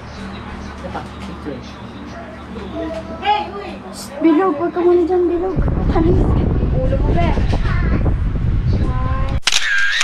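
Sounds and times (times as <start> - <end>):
camera shutter sound effect: 9.4 - 10.0.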